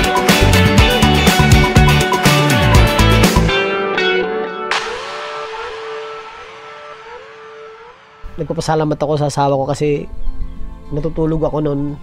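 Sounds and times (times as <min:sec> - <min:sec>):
electric guitar note bending: 0:02.4 - 0:09.4.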